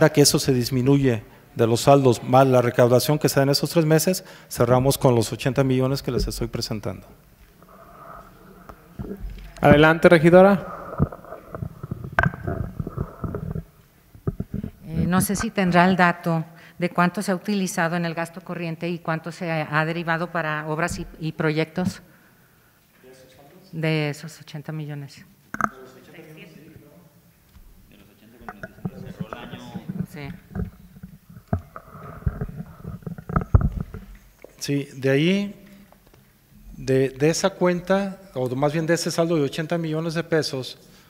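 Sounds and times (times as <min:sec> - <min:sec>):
microphone handling bumps and rubbing: 0:06.0 - 0:06.8, 0:07.7 - 0:15.5, 0:20.8 - 0:22.0, 0:28.4 - 0:34.3
microphone handling knock: 0:06.1 - 0:06.6.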